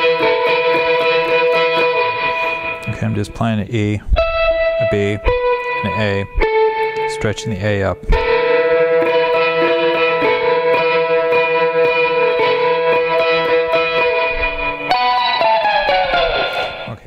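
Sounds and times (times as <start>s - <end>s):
tremolo-picked electric guitar: 0.0s - 17.0s.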